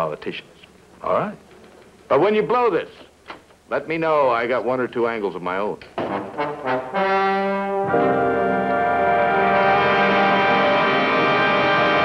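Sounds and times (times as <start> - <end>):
brass chords led by trombones: 6.0 - 12.0.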